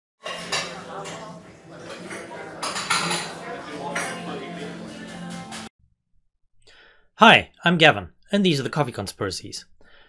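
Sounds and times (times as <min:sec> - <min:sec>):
crockery and cutlery clinking: 0:00.2 - 0:05.7
background voices: 0:00.3 - 0:05.7.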